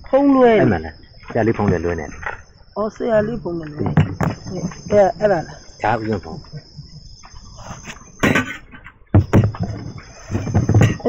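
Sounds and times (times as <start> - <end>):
high-pitched background tone: 0.0 - 11.0
man talking: 5.1 - 6.6.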